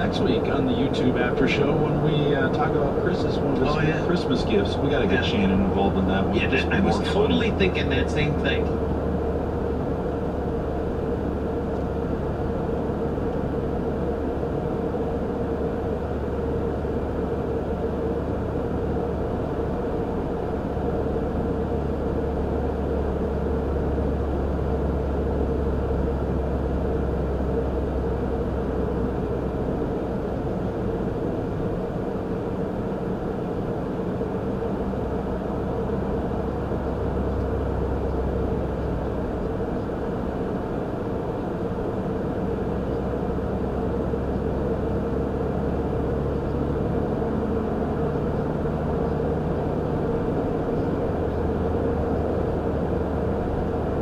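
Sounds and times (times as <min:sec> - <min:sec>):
car road and engine noise: 0:00.0 - 0:54.0
constant hum: 0:00.0 - 0:54.0.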